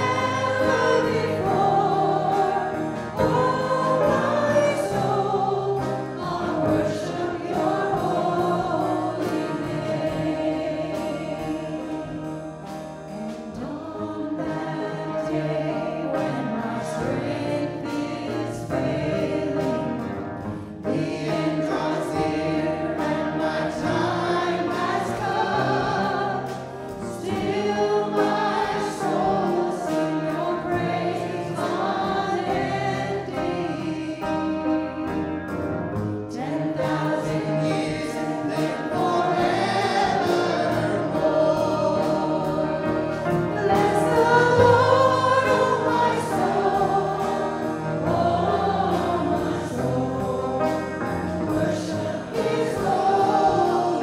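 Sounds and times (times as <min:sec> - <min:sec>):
group singing worship song: 0:00.0 - 0:54.0
piano: 0:00.0 - 0:54.0.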